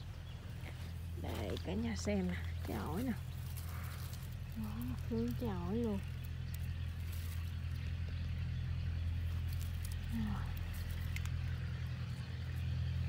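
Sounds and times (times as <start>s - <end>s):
low mechanical hum: 0.0s - 13.0s.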